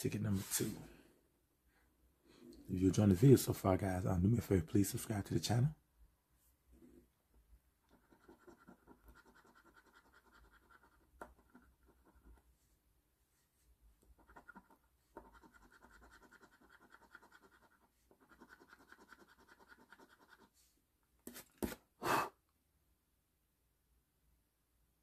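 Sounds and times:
coin scraping scratch card: 0:08.0 - 0:12.3, 0:14.2 - 0:20.5.

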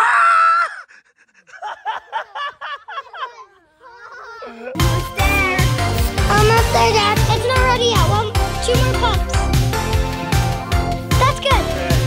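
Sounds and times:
bursts of laughter: 0:00.0 - 0:05.0.

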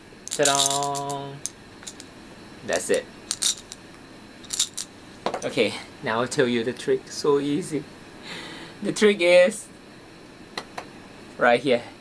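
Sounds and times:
dice rattling in plastic cap: 0:00.3 - 0:01.2, 0:02.9 - 0:03.8, 0:04.5 - 0:04.9.

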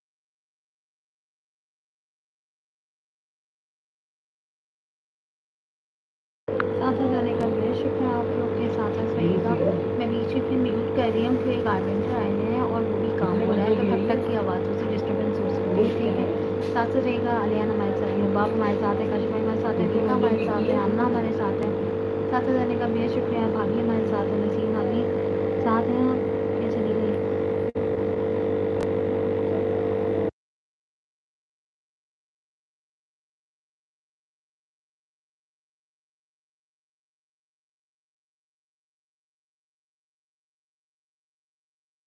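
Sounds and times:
steady machine hum: 0:06.5 - 0:30.3.

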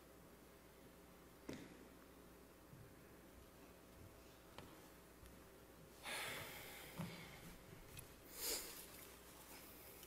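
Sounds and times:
person sniffing: 0:08.3 - 0:08.9.

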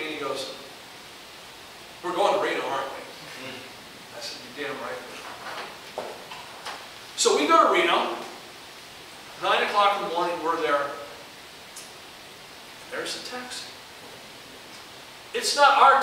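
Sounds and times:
man speaking: 0:00.0 - 0:00.6, 0:02.0 - 0:05.3, 0:07.2 - 0:08.4, 0:09.4 - 0:11.2, 0:12.9 - 0:13.8, 0:15.3 - 0:16.0
room hiss: 0:00.0 - 0:16.0.

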